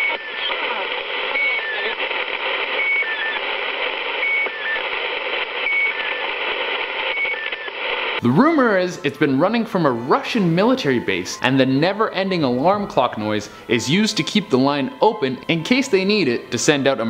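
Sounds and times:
repeating two-tone radio tones: 0:00.0 - 0:12.8
radio static hiss: 0:00.0 - 0:17.0.

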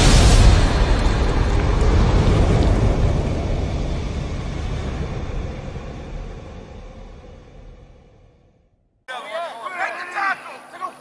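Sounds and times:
deep rumbling rush: 0:00.0 - 0:08.9.

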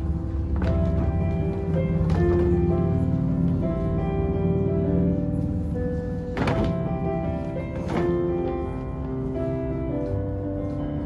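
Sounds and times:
piano accompaniment: 0:00.0 - 0:11.0.

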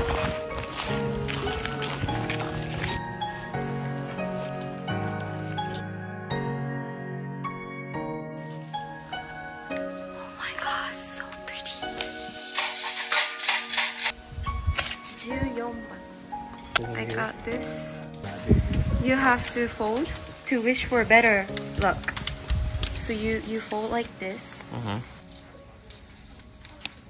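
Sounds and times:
paper rustling: 0:00.0 - 0:05.8, 0:12.0 - 0:14.2, 0:18.2 - 0:24.6
sticks rattling in a box: 0:12.5 - 0:14.2.

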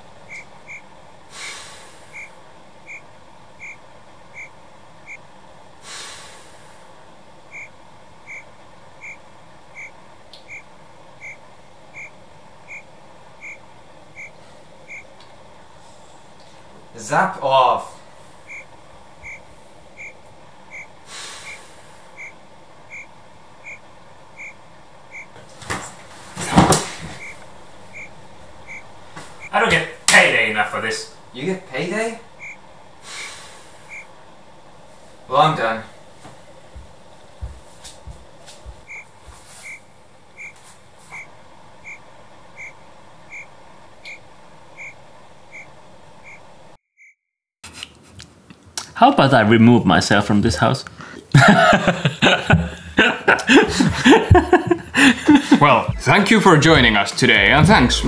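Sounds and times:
high-pitched chirp: 0:00.3 - 0:00.8, 0:03.6 - 0:03.8, 0:07.5 - 0:07.7, 0:08.3 - 0:09.2, 0:09.8 - 0:10.6, 0:11.2 - 0:11.4, 0:12.7 - 0:13.6, 0:14.2 - 0:15.1, 0:18.5 - 0:20.9, 0:22.2 - 0:23.8, 0:24.4 - 0:25.3, 0:27.2 - 0:28.1, 0:32.4 - 0:32.6, 0:44.8 - 0:46.4
cricket chirps: 0:00.3 - 0:00.9, 0:02.1 - 0:05.2, 0:07.5 - 0:13.6, 0:14.2 - 0:15.1, 0:18.5 - 0:21.6, 0:22.2 - 0:25.4, 0:27.2 - 0:29.6, 0:32.4 - 0:32.6, 0:33.9 - 0:34.1, 0:38.9 - 0:39.8, 0:40.4 - 0:40.6, 0:41.2 - 0:47.2.

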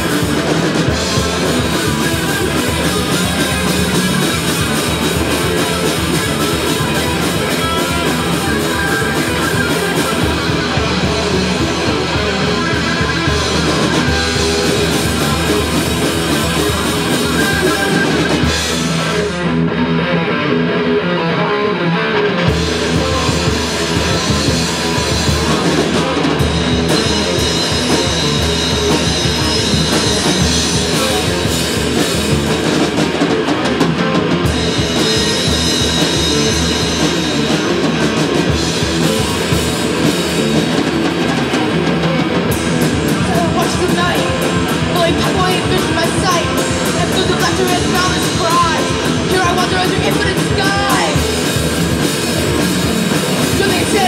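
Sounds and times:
drum kit: 0:00.0 - 0:21.3, 0:22.2 - 0:54.0
bass guitar: 0:00.0 - 0:54.0
distorted electric guitars: 0:00.0 - 0:54.0.

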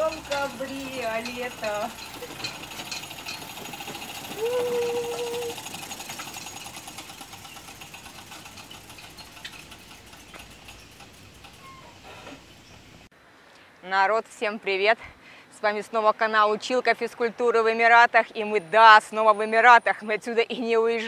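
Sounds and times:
bicycle chain ticking: 0:00.0 - 0:11.8.

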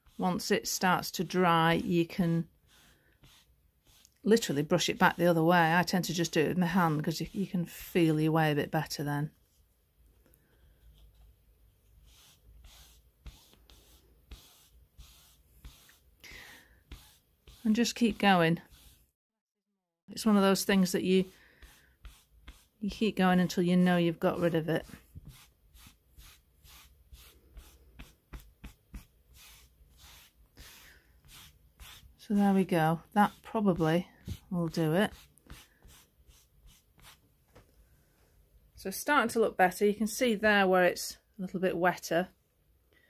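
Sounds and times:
velvet brushing on velvet: 0:00.0 - 0:08.1, 0:11.9 - 0:19.1, 0:20.5 - 0:37.2.

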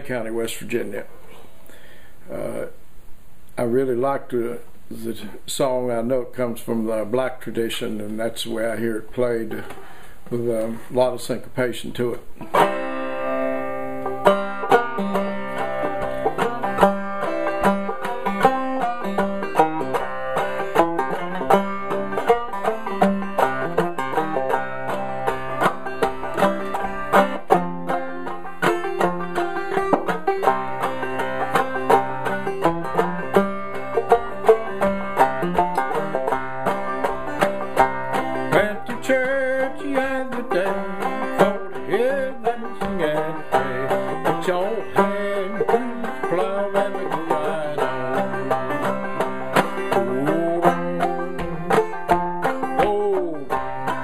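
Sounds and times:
banjo playing old-time tune: 0:00.0 - 0:01.1, 0:03.6 - 0:54.0.

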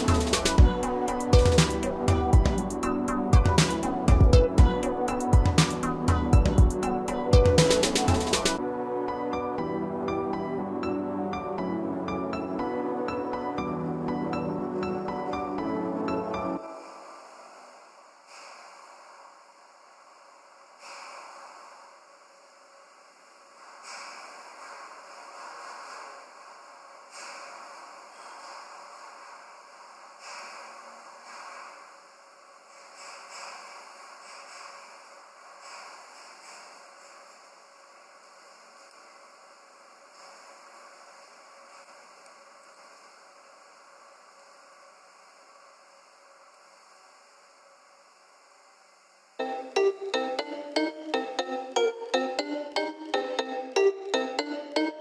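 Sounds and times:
steady hiss: 0:00.0 - 0:08.6, 0:10.8 - 0:55.0
faint breath-like noises: 0:09.3 - 0:55.0.

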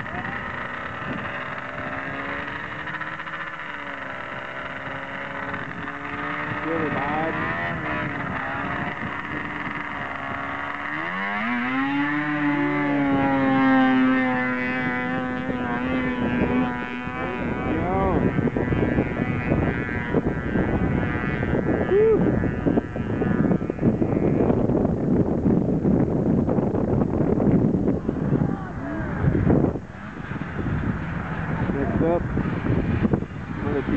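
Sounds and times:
snowmobile engine revving: 0:00.0 - 0:25.0, 0:27.1 - 0:33.9
wind on microphone: 0:00.0 - 0:33.9.

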